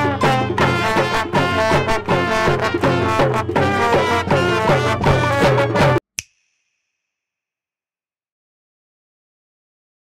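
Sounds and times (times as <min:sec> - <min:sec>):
music: 0:00.0 - 0:06.0.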